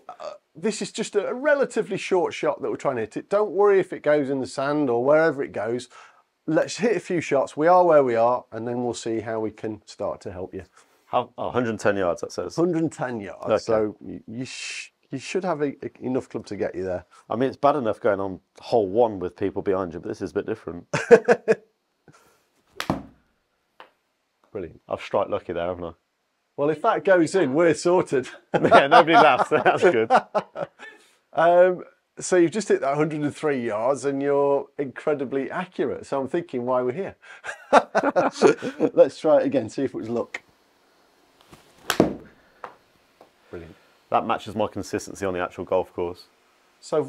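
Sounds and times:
person laughing: 0:20.9 - 0:21.6, 0:28.3 - 0:31.1, 0:37.4 - 0:39.0
golf club striking ball: 0:22.8 - 0:23.2.

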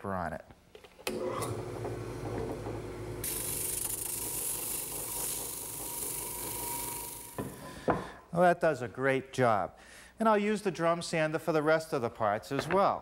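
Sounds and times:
drill press motor hum: 0:01.0 - 0:07.6
drum sander rasping: 0:01.2 - 0:07.8.

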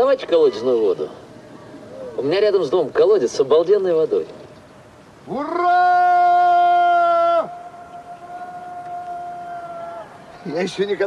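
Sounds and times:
man shouting: 0:05.3 - 0:10.1.

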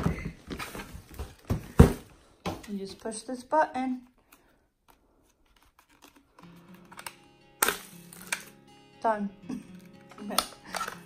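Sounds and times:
plastic snap: 0:06.8 - 0:08.5, 0:10.1 - 0:11.0.

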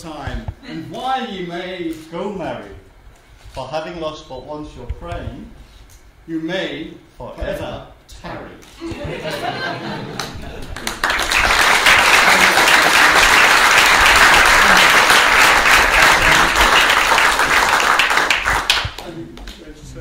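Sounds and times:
laughter: 0:08.8 - 0:10.9
guests applauding: 0:10.1 - 0:19.2.

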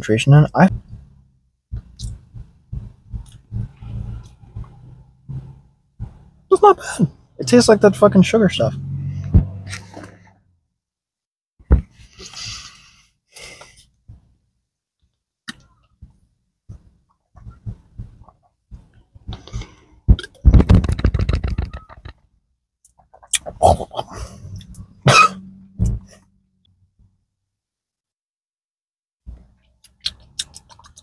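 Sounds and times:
gulping from plastic bottle: 0:23.1 - 0:25.3
man coughing: 0:25.1 - 0:25.4.

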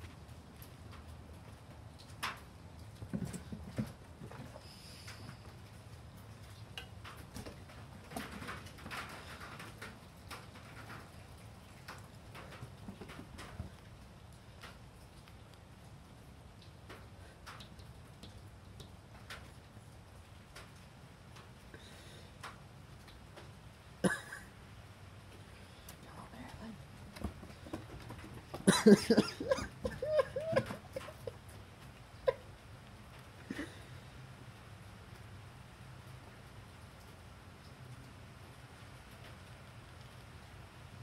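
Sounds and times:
faint steady background noise: 0:00.0 - 0:41.0
cat paws tapping on wooden boards: 0:26.8 - 0:31.6.

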